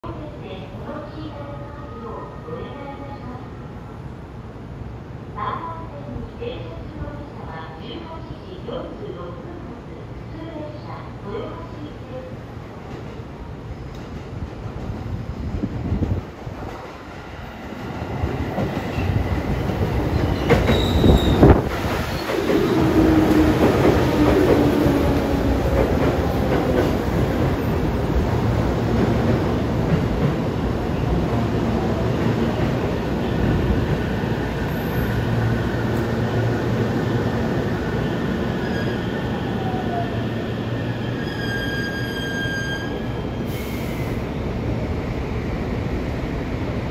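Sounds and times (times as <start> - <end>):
high brake squeal: 20.4 - 21.4, 38.6 - 39.3, 40.8 - 44.2.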